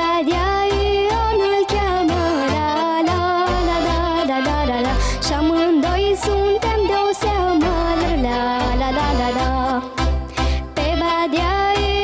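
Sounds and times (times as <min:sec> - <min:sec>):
girl singing folk song: 0:00.0 - 0:10.0, 0:10.7 - 0:12.0
backing track with bass beat: 0:00.0 - 0:12.0.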